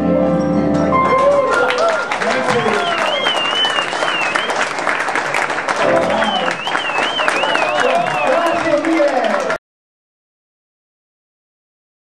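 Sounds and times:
audience applauding and cheering: 0.9s - 9.6s
person whistling: 2.6s - 4.6s, 5.9s - 8.6s.

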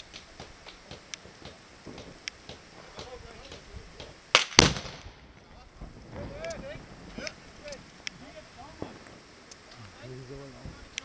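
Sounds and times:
gun blasts: 4.3s - 5.4s.

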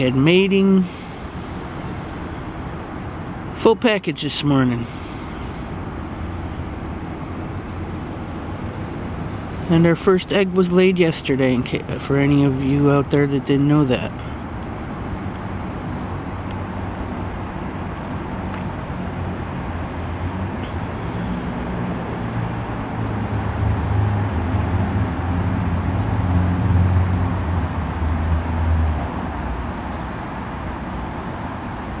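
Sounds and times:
street traffic noise: 0.0s - 32.0s
vehicle engine rumble passing: 0.0s - 32.0s.

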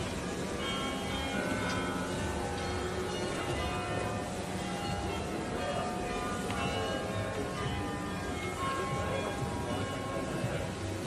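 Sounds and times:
bells ringing: 0.0s - 11.0s.

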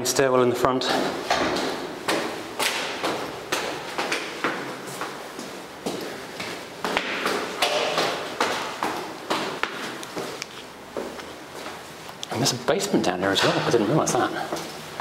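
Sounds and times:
footsteps going down stairs: 0.7s - 12.2s, 13.4s - 15.0s.

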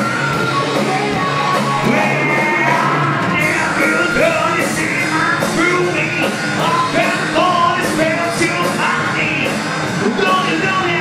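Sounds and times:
hard rock band playing: 0.0s - 11.0s
man singing: 1.6s - 11.0s.

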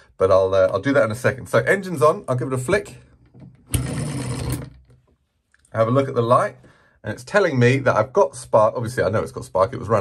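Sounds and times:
model petrol engine buzzing: 3.7s - 4.8s.

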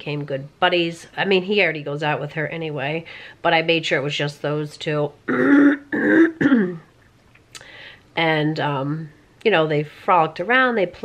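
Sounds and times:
woman clearing her throat: 5.3s - 6.9s.

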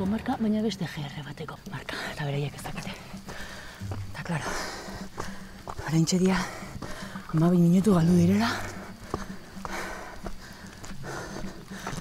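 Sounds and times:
footsteps on rocky trail: 1.6s - 12.0s
person breathing: 3.3s - 5.8s, 6.4s - 7.3s, 8.5s - 12.0s.

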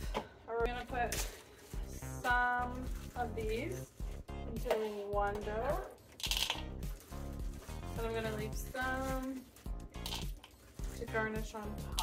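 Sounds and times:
background music with beat: 0.0s - 12.0s
chocolate chips rattling into dough: 6.2s - 8.0s, 9.0s - 11.0s.

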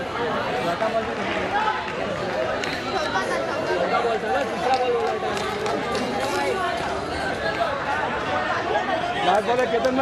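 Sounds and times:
overlapping chatter of voices: 0.0s - 10.0s.

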